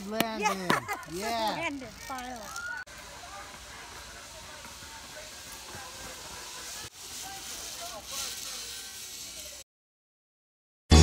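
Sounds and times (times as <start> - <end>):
zip line pulleys on steel cable: 0.8 - 9.6
faint voices: 1.1 - 9.6.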